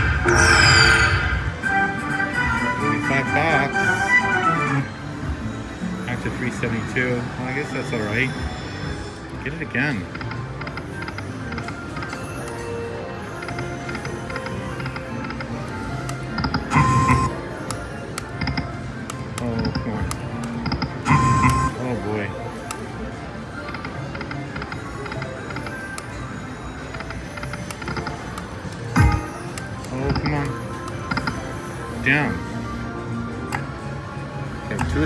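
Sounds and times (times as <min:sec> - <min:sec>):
slot machine music and jingles: 0:00.2 - 0:35.0
casino background chatter: 0:06.0 - 0:35.0.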